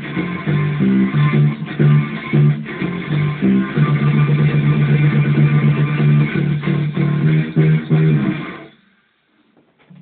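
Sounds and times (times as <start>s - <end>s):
electric bass guitar run: 0.0s - 8.8s.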